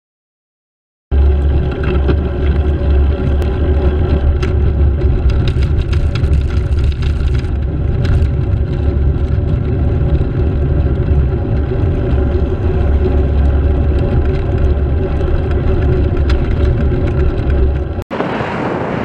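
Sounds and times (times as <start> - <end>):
sharp clicks and rattles: 1.1 - 18.0
engine-like hum: 1.1 - 19.0
wind and road noise: 1.1 - 19.0.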